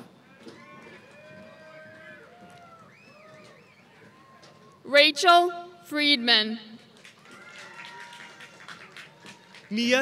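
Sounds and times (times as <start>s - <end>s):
faint audience cheering and whoops: 0.4s - 4.8s, 7.2s - 9.7s.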